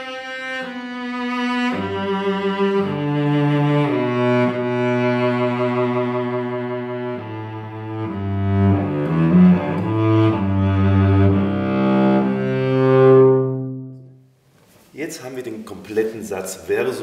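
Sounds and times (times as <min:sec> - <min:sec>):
cello bowed low: 0:00.0 - 0:14.1.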